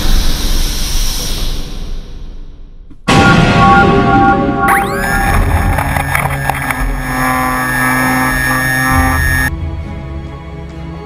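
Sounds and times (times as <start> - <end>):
model plane motor whine: 4.9 - 9.5.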